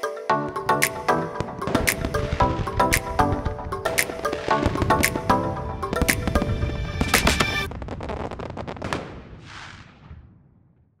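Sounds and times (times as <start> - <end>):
music: 0.0 - 7.7
fireworks crackling: 0.8 - 10.2.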